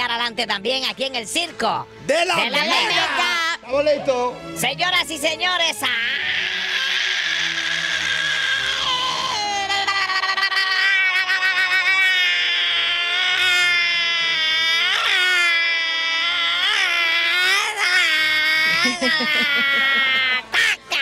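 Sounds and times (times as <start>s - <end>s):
falsetto comic wailing: 5.7s - 21.0s.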